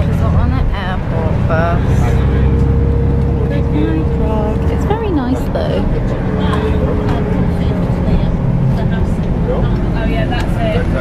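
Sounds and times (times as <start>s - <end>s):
bus engine and tyres rumbling: 0.0s - 11.0s
faint passengers' voices: 0.0s - 11.0s.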